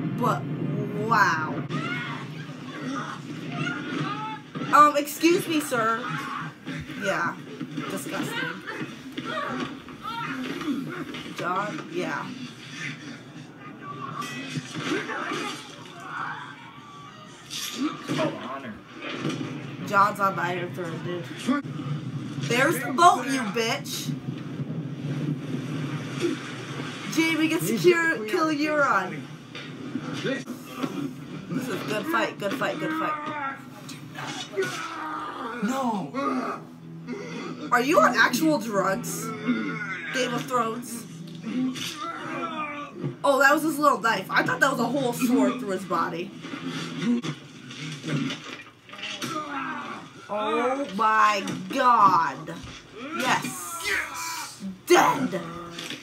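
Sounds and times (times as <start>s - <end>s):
noisy scuffle: 0.1s - 35.8s, 37.9s - 56.0s
man groaning: 34.6s - 37.6s.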